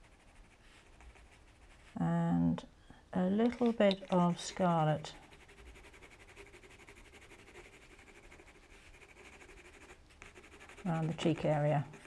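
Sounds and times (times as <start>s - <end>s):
pencil scratching on paper: 0.0s - 2.0s, 3.6s - 12.0s.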